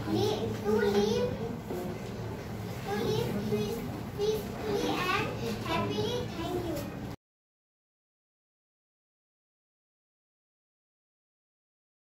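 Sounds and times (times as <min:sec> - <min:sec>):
children talking: 0:00.0 - 0:07.2.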